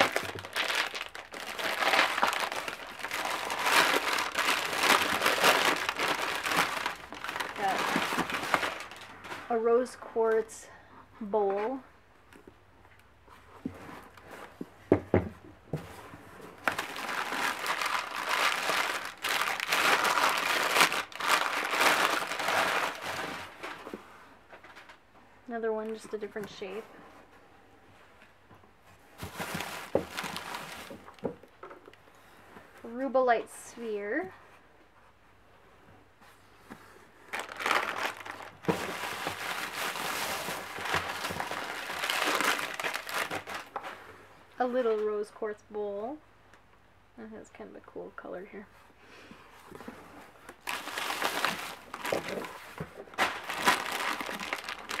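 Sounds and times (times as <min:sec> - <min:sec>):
packing paper crinkling: 0:00.0 - 0:09.6, 0:16.6 - 0:23.9, 0:29.2 - 0:31.2, 0:37.3 - 0:43.9, 0:50.4 - 0:55.0.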